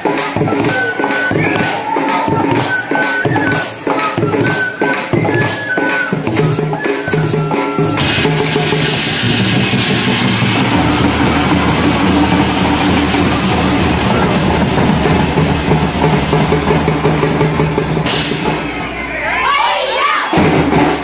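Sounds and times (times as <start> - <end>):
drum ensemble playing fast rhythm: 0.0 - 19.5, 20.3 - 21.0.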